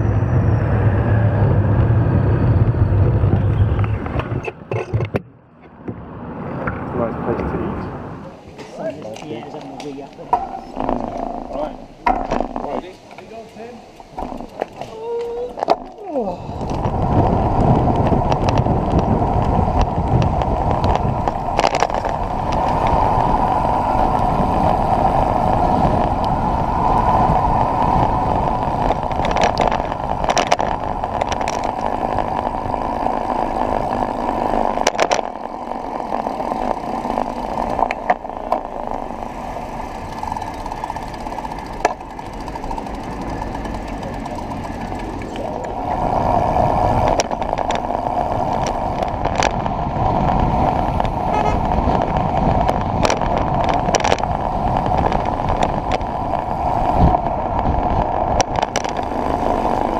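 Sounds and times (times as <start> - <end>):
wind rushing over microphone: 0.0 - 8.6, 9.2 - 59.9
tyre and road rumble: 0.0 - 59.9.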